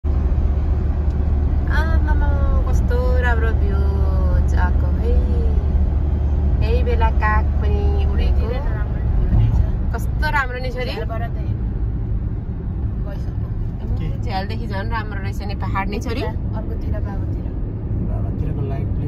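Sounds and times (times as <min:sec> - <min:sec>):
car engine and road noise: 0:00.0 - 0:19.0.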